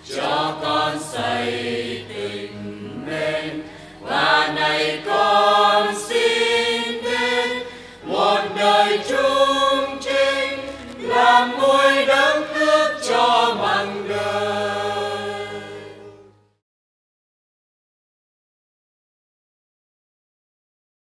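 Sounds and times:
choir singing a hymn: 0:00.0 - 0:16.4.

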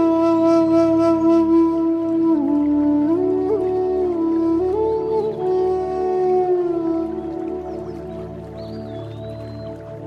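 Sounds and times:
bamboo flute long note: 0:00.0 - 0:10.0.

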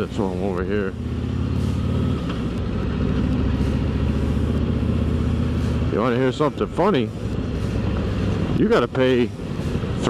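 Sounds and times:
motorcycle exhaust rumble: 0:00.0 - 0:10.0.

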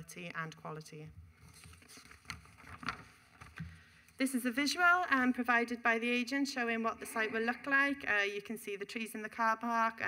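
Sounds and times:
paper sheets rustling: 0:01.4 - 0:03.6.

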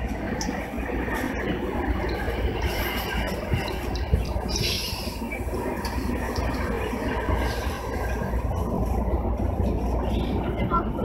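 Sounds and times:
electric train rumble and hum: 0:00.0 - 0:11.0.

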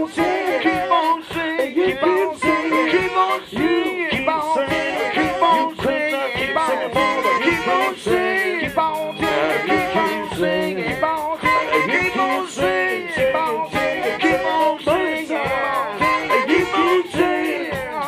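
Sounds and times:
electric guitar: 0:00.0 - 0:18.0
saxophones: 0:00.0 - 0:18.0
steady drum beat: 0:00.0 - 0:18.0.

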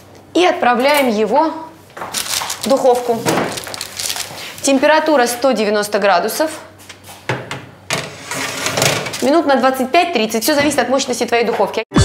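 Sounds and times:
baking tray scraping oven rack: 0:07.9 - 0:09.3.

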